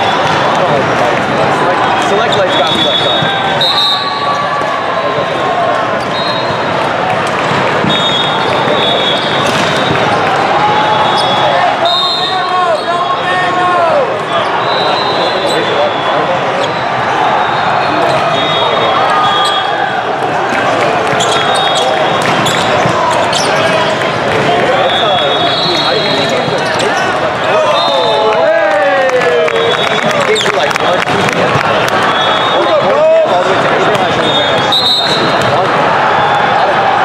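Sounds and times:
whistle blasts: 2.3 - 4.4, 6.1 - 6.6, 7.9 - 10.0, 10.9 - 13.0, 14.3 - 16.2, 17.4 - 19.8, 21.2 - 22.2, 24.8 - 26.3, 32.1 - 32.8, 34.1 - 35.4
volleyballs struck and bouncing: 5.7 - 10.9, 20.2 - 24.9, 33.4 - 35.8
loud shout: 7.9 - 37.0.

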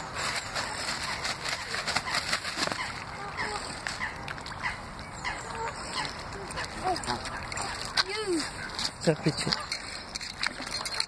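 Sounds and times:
waterfowl calling: 0.2 - 9.9.

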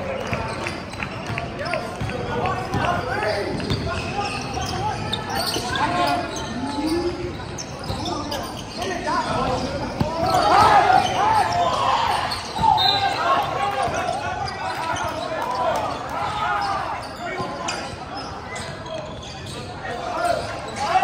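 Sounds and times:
sneakers squeaking: 0.0 - 21.0.

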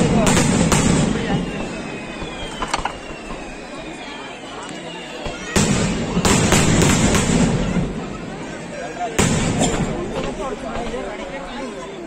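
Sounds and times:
firework crackling: 0.0 - 4.2, 5.1 - 8.1.

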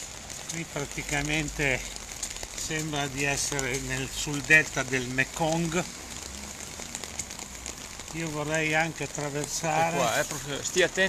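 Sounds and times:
rain hissing: 0.0 - 11.0
running floodwater: 0.0 - 11.0.

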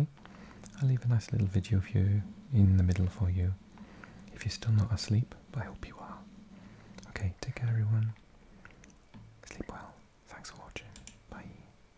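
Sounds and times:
man whispering: 0.0 - 8.2, 9.4 - 11.8
breathy sounds: 0.2 - 0.8, 3.6 - 4.4, 6.2 - 7.1.

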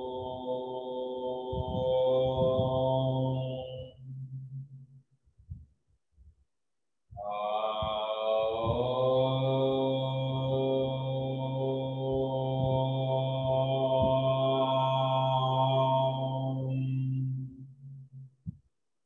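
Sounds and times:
man chanting low note: 0.0 - 4.1, 7.2 - 17.5.

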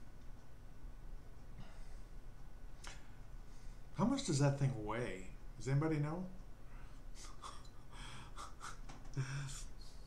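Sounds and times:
man laughing under his breath: 7.2 - 9.7.

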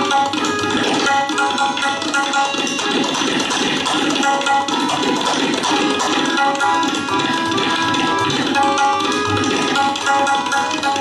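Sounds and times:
harmonium playing held reed tones: 0.0 - 3.4, 4.2 - 11.0
rapid tabla strokes: 0.0 - 11.0.

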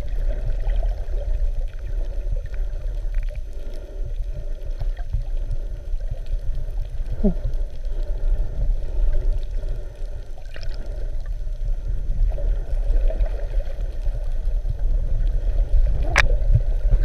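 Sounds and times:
faint ticks: 0.0 - 17.0
muffled underwater rumble: 0.0 - 17.0.

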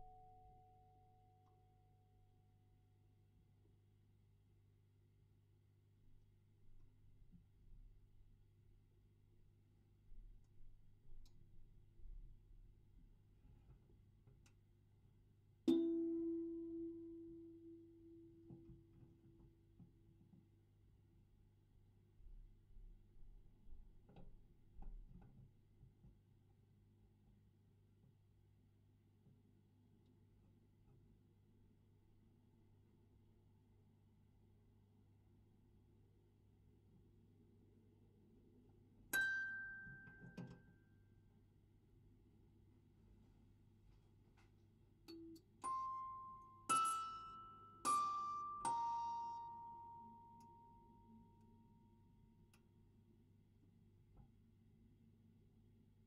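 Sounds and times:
music-box note ringing: 45.1 - 50.6.

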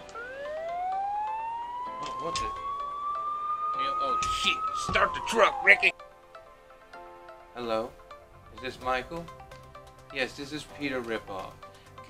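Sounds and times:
siren winding up: 0.0 - 5.9.

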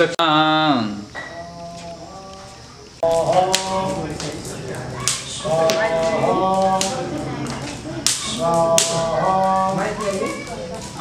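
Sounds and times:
man chanting: 0.3 - 7.4, 8.2 - 10.5.

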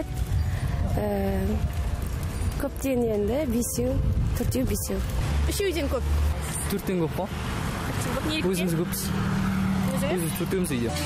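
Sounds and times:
street noise rumble: 0.0 - 11.0.

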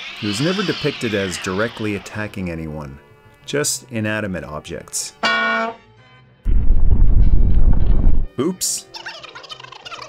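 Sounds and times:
low rumbling crash effect: 6.5 - 8.3.

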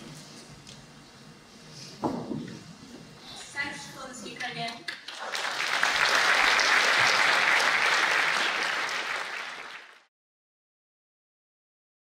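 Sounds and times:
audience applauding: 4.9 - 10.1.

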